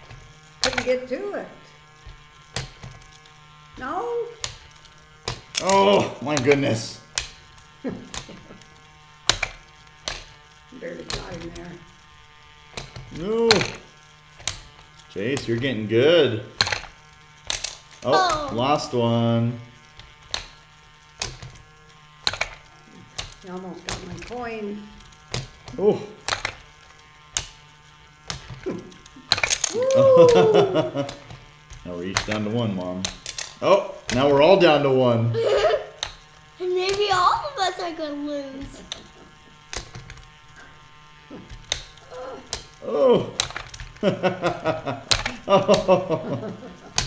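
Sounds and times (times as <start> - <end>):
small motor whirring: 0.0 - 47.0
person exclaiming: 5.6 - 6.3, 18.0 - 18.8, 25.7 - 26.2, 29.6 - 31.1, 33.6 - 34.0, 35.3 - 35.9, 41.3 - 43.4
plastic clacks: 16.6 - 18.6, 21.2 - 27.6, 31.0 - 34.2, 43.4 - 46.0.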